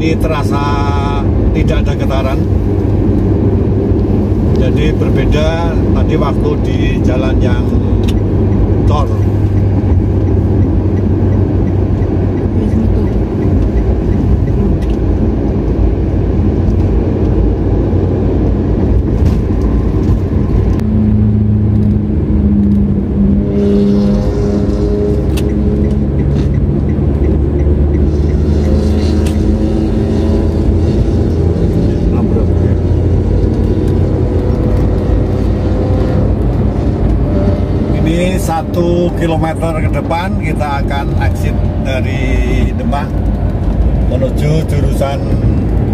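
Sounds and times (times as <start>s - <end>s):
engine hum: 0.0s - 45.9s
pitched drone: 0.0s - 45.9s
tyres rumbling on road: 0.0s - 45.9s.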